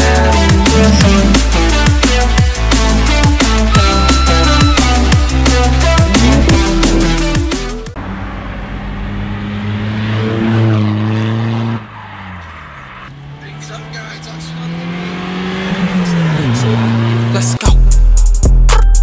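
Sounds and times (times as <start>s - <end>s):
diesel engine pulling hard: 13.2s - 17.6s.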